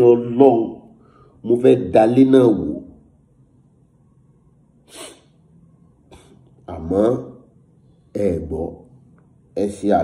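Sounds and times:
man talking: 0.0 - 3.0, 6.6 - 7.4, 8.1 - 8.9, 9.6 - 10.0
man's sharp breath: 1.0 - 1.4, 4.9 - 5.4.

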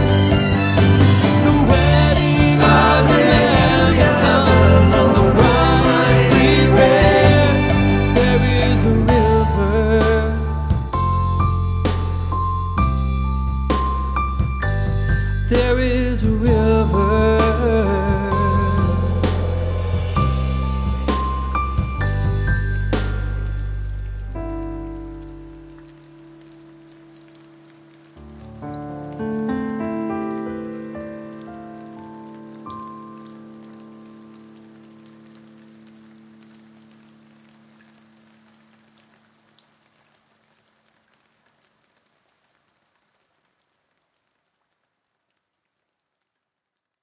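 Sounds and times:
song closing notes and chords: 0.0 - 13.5.

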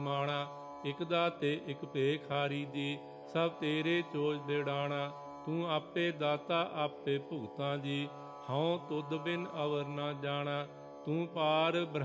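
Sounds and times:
person singing a hymn: 11.1 - 12.0.

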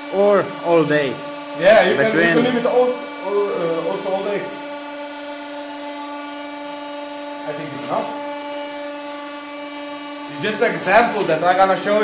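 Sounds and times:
electric pump motor humming: 0.0 - 12.0.

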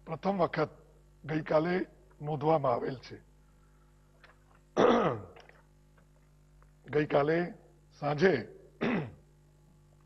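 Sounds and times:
man clearing throat: 4.8 - 5.5, 8.8 - 9.2.

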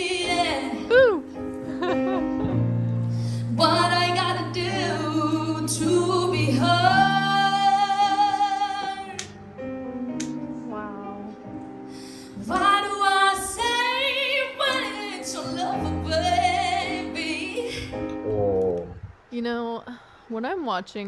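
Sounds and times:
woman singing: 0.0 - 1.3, 3.4 - 9.3, 12.4 - 18.0
electronic keyboard: 15.4 - 19.0.

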